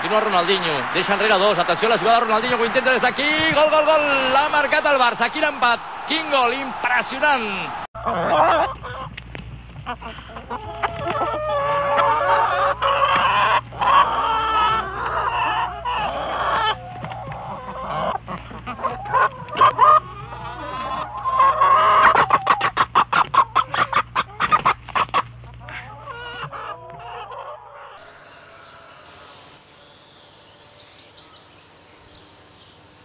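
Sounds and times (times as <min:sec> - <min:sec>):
chickens clucking: 0:08.0 - 0:31.7.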